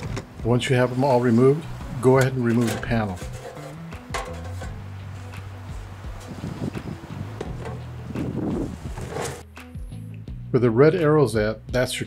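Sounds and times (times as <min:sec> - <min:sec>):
background music with low notes: 0:00.0 - 0:12.0
metal panel clanking: 0:02.0 - 0:05.0, 0:06.1 - 0:09.4.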